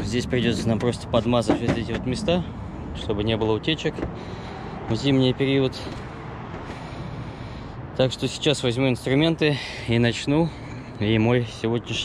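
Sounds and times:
distant street traffic rumble: 0.0s - 12.0s.

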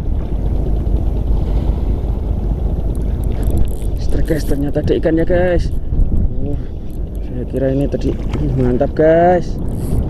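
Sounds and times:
choppy sea water: 0.0s - 10.0s
wind buffeting microphone: 0.0s - 10.0s.

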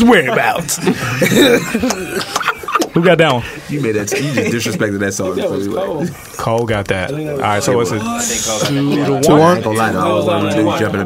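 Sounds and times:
men talking: 0.0s - 11.0s
men laughing: 0.2s - 6.2s.

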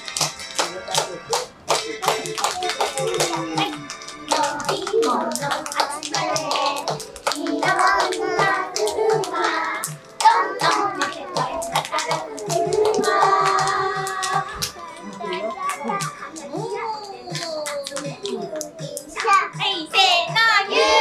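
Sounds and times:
hands clapping to a beat: 0.0s - 20.5s
children's song with singing: 0.6s - 21.0s.

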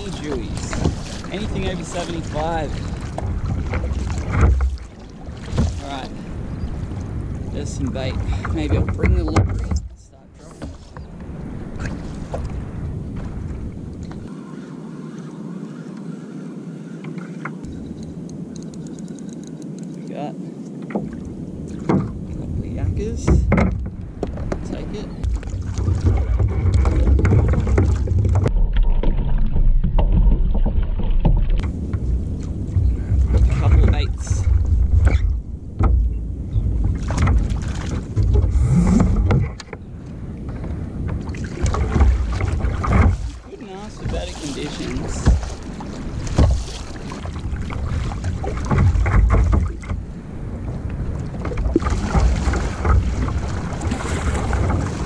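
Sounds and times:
paddle strokes splashing: 0.0s - 55.0s
water washing against hull: 0.0s - 55.0s
wind buffeting microphone: 0.0s - 55.0s.

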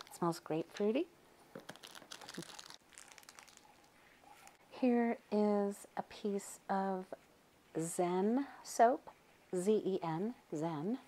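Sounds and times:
soap crinkling in plastic tub: 1.6s - 3.9s.

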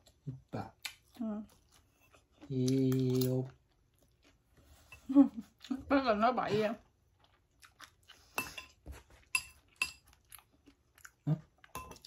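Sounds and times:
quiet chewing: 0.0s - 5.8s, 6.8s - 12.0s.

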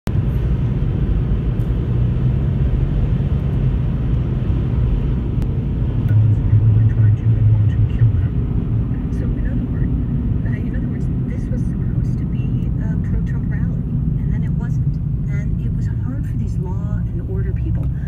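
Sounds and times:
car road rumble from inside: 0.1s - 18.0s.

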